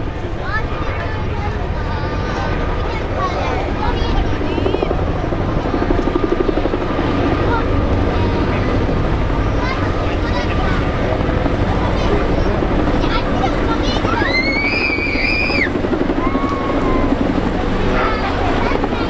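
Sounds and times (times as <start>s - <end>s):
helicopter rotor beat: 0.0s - 19.0s
helicopter turbine noise: 0.0s - 19.0s.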